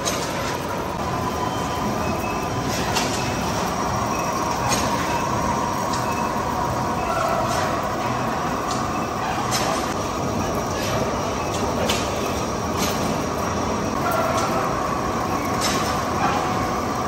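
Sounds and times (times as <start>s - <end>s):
lathe machine noise: 0.0s - 17.0s.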